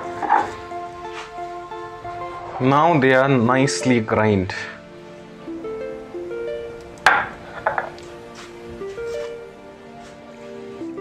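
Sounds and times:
soft background music: 0.0 - 11.0.

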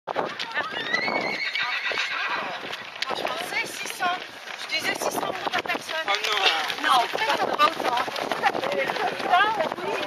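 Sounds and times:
runners footsteps on pavement: 0.1 - 10.0
voices: 0.2 - 10.0.

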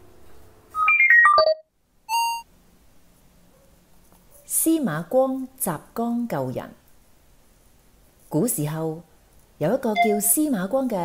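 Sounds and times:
electronic jingle tones: 0.8 - 2.4, 10.0 - 10.3.

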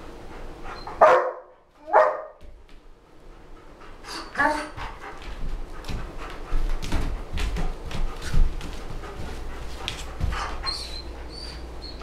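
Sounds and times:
dog barking: 1.0 - 2.4.

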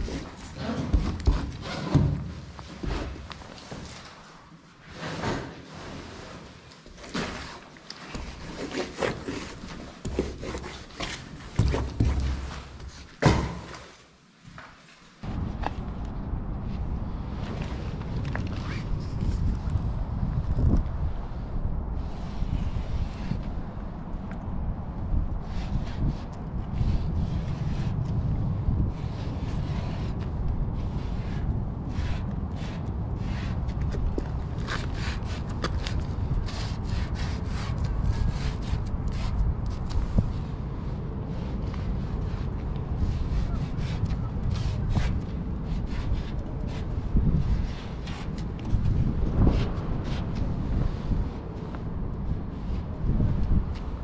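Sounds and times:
wind buffeting microphone: 15.2 - 54.0.

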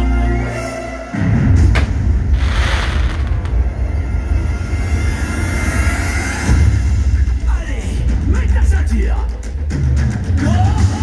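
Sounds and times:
firework bang: 1.7 - 4.2
loud deep rumble: 1.7 - 8.2
firework hissing crackle: 1.8 - 3.9.

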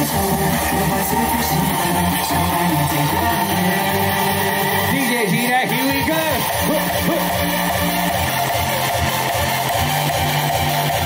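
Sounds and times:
pop music over speakers: 0.0 - 11.0.

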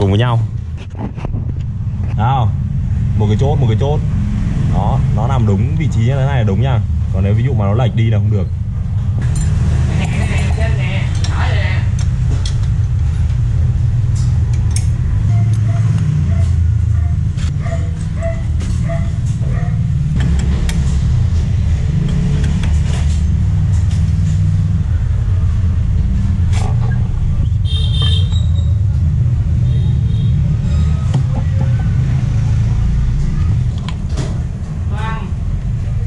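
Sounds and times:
steady low rumble: 0.0 - 15.5, 16.3 - 36.0
metal engine parts clinking: 9.2 - 11.3.

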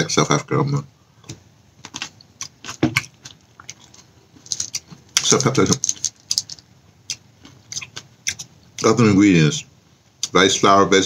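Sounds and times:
person chewing: 1.2 - 9.0.

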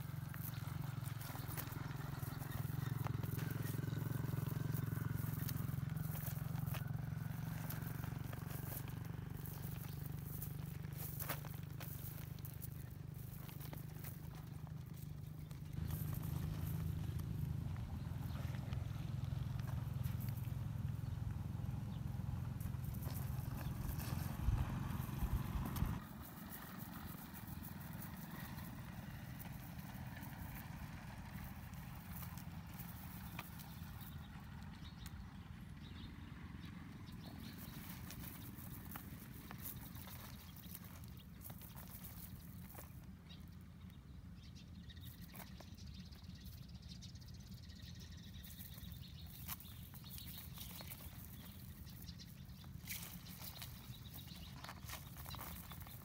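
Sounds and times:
low steady rumble: 0.0 - 56.0.

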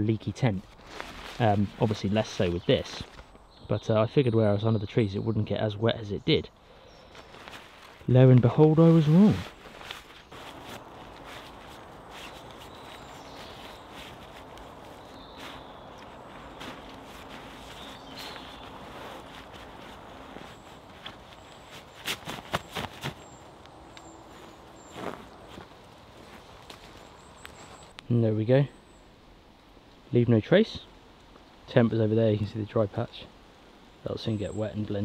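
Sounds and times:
tent fabric rustling: 0.6 - 3.3, 7.0 - 27.9.

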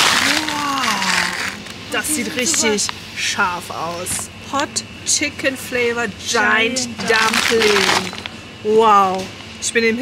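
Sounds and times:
plastic bag crinkling: 0.0 - 1.8, 7.0 - 8.4.

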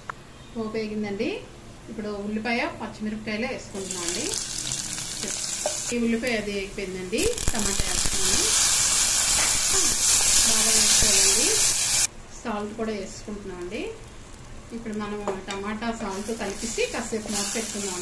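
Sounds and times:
vegetables sizzling in hot oil: 3.7 - 12.1, 13.4 - 18.0.

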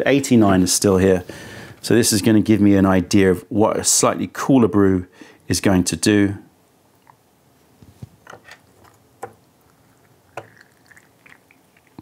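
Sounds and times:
water dripping: 8.8 - 12.0.

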